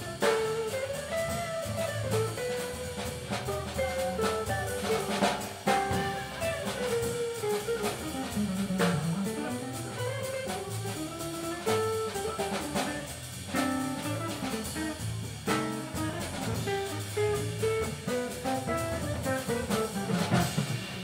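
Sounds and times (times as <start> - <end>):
drum kit with cymbals: 0.0 - 21.0
guitar: 0.0 - 21.0
upright bass walking line: 0.0 - 21.0.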